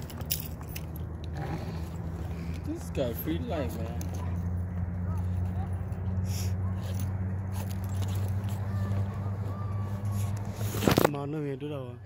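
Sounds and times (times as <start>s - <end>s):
distant players shouting: 8.1s - 10.7s.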